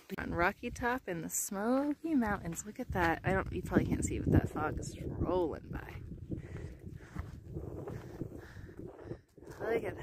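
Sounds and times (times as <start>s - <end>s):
wind buffeting microphone: 2.0s - 10.0s.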